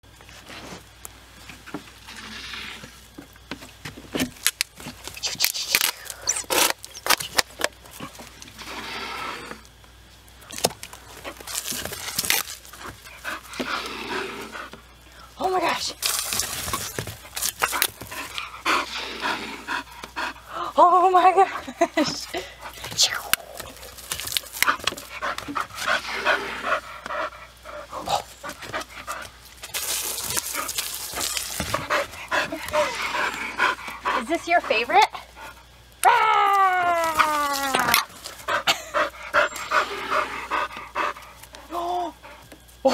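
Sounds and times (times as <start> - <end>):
dog panting hard: 17.2 - 20.8, 24.6 - 29.4, 30.5 - 35.7, 38.4 - 41.5.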